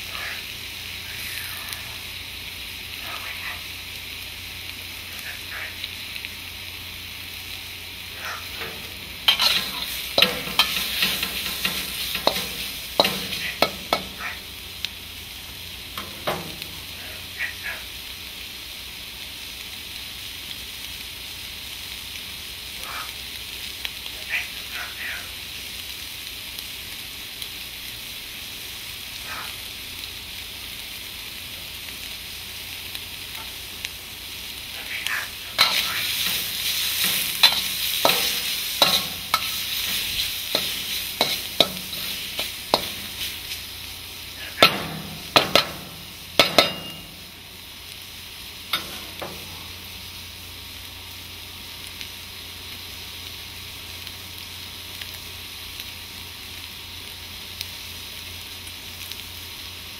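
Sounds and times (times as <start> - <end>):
food sizzling in a wok: 0.0 - 59.9
metal spatula scraping wok: 8.4 - 14.5, 16.0 - 17.2, 35.3 - 43.7, 44.4 - 47.4, 48.7 - 49.7.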